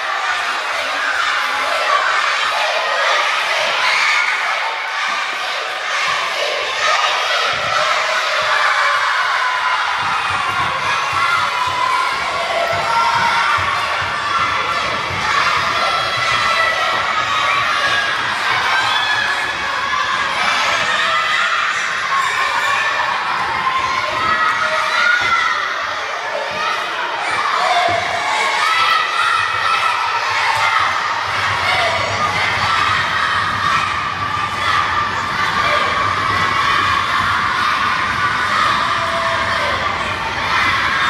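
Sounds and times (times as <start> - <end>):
children shouting and cheering: 0.0 - 41.0.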